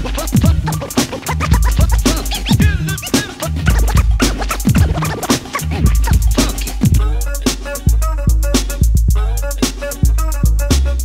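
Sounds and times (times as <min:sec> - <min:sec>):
record scratching on turntable: 0:00.0 - 0:07.8
deep bass line: 0:00.0 - 0:11.0
drums: 0:00.0 - 0:11.0.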